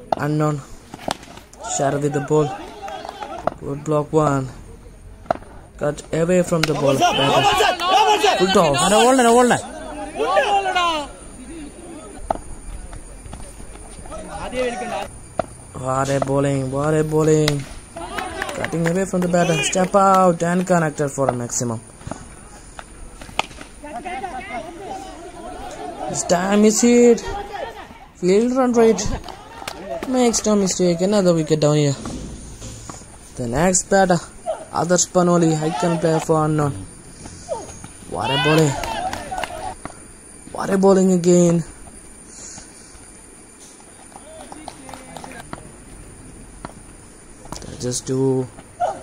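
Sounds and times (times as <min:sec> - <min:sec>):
distant players shouting: 0:00.0 - 0:49.0
distant voices chatting and calling: 0:00.0 - 0:49.0.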